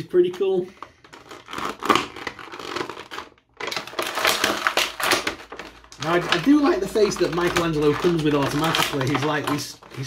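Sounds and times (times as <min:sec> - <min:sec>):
plastic packaging crinkling: 0:00.2 - 0:10.0.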